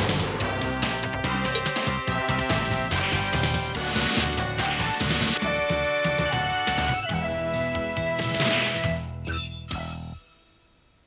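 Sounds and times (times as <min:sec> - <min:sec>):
jingle music with steady beat: 0:01.0 - 0:07.1.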